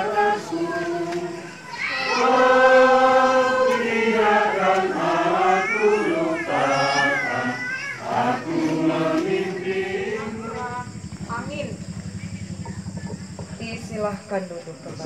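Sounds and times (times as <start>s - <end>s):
congregation singing in unison: 0.0s - 11.3s.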